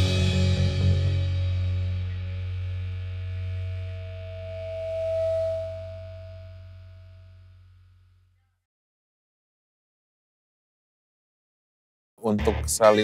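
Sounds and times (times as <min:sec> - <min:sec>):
electric guitar chord ringing: 0:00.0 - 0:07.5
held low bass note: 0:00.0 - 0:07.8, 0:12.3 - 0:13.0
clear tone: 0:03.2 - 0:07.6.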